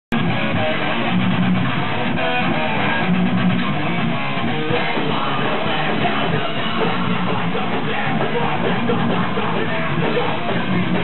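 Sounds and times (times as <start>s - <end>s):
thrash metal band playing live: 0.1s - 11.0s.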